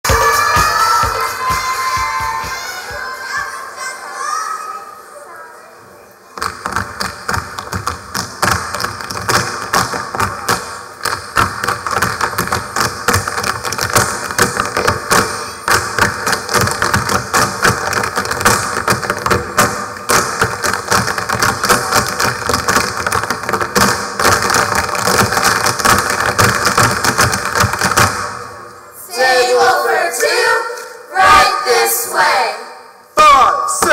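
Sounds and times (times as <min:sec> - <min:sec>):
tap shoes striking stage floor: 0:06.4 - 0:28.4.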